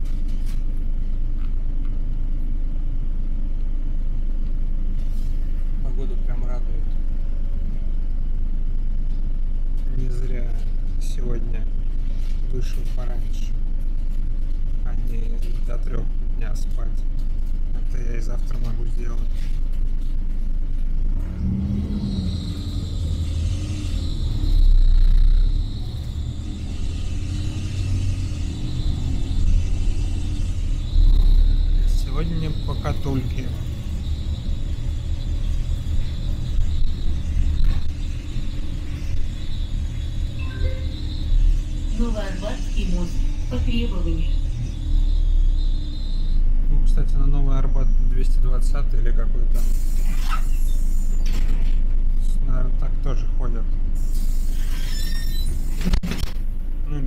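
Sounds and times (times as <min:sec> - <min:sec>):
road rumble: 0:00.0 - 0:49.8
bus diesel engine: 0:00.0 - 0:57.0
high whine: 0:00.0 - 0:57.0.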